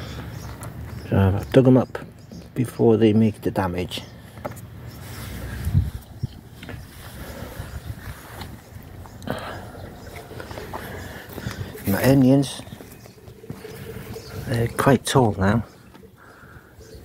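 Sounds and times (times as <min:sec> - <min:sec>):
footsteps: 0:10.1 - 0:16.1.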